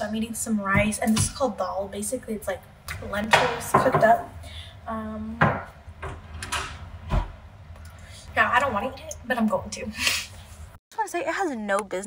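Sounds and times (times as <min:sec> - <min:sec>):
dishes and utensils knocking: 0:03.3 - 0:04.3, 0:05.4 - 0:07.2.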